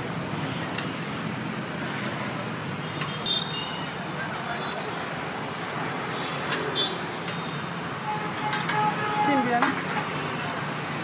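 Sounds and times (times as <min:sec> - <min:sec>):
roadside traffic noise: 0:00.0 - 0:11.0.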